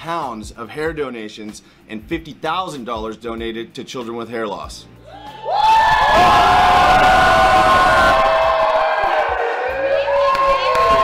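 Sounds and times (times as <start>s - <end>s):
crowd cheering: 5.1s - 11.0s.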